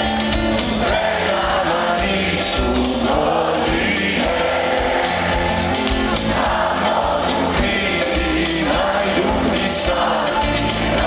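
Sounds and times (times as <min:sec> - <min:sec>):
live band playing: 0:00.0 - 0:11.0
voices singing: 0:00.0 - 0:11.0.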